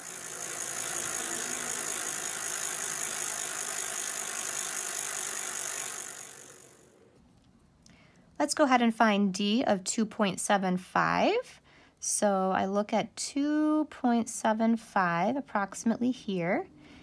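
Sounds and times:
bicycle riding by rattling whir: 0.0 - 7.1.

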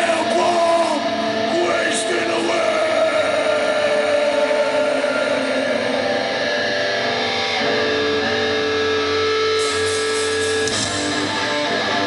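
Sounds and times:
crowd noise: 0.0 - 12.0
distorted electric guitar riff: 0.0 - 12.0
ringing guitar tones: 0.0 - 12.0.

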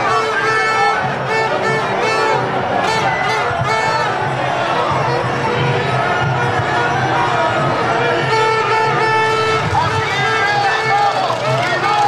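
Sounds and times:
crowd calling and talking: 0.0 - 12.0.

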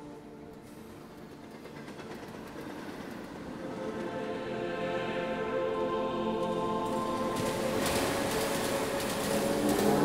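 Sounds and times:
rumbling clattering noise: 0.5 - 4.1, 6.8 - 10.0.

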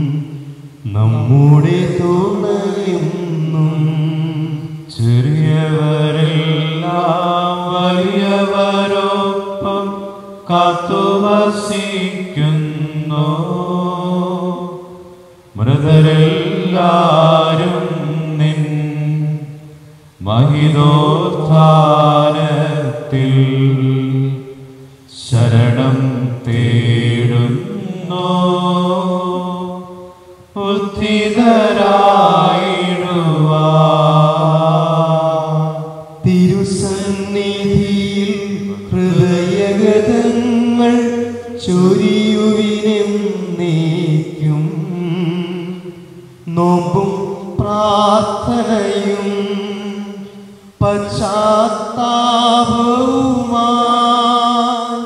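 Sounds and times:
man singing a chant: 0.0 - 55.0.

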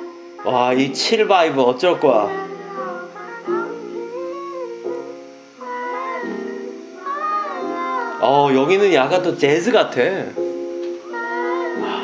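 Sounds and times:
mellow r and b song: 0.0 - 12.0.

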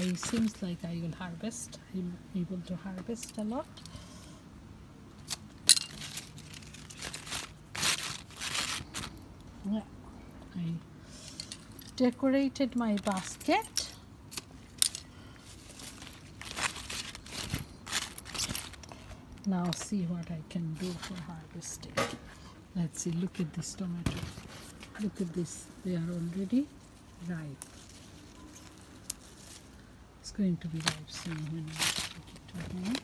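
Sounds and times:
leaves and paper rustling: 0.0 - 1.6, 5.2 - 9.2, 14.3 - 19.8, 20.6 - 21.6, 24.1 - 33.0.

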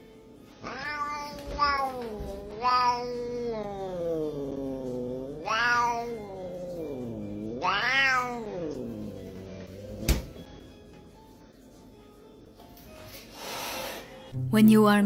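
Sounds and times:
cat yowling: 0.6 - 10.1.

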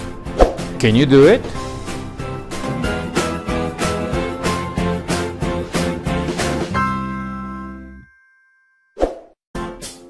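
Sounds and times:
jingle music: 0.8 - 8.9.

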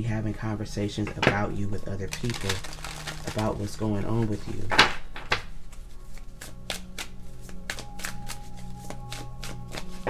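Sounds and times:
quiet background music: 0.0 - 10.0
cards being shuffled: 2.0 - 10.0.

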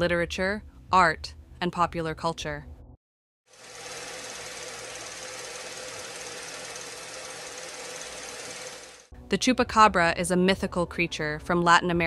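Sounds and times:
mechanical whirr with hum: 3.6 - 9.1.

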